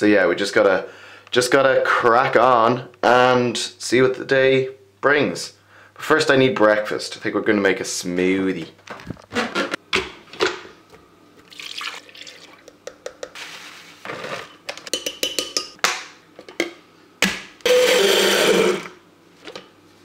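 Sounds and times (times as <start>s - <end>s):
blender running: 17.6s - 19.0s.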